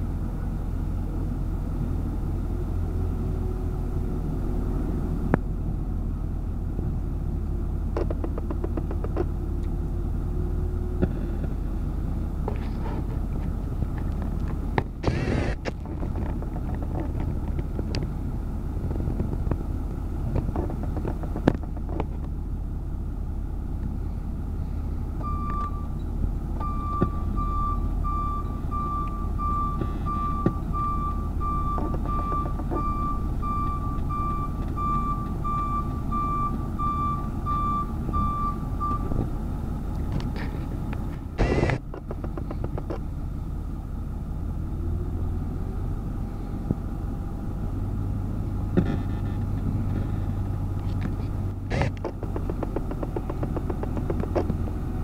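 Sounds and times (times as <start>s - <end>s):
heavy machinery engine rumble: 0.0s - 55.0s
reversing alarm beeping: 25.2s - 26.0s, 26.6s - 39.1s.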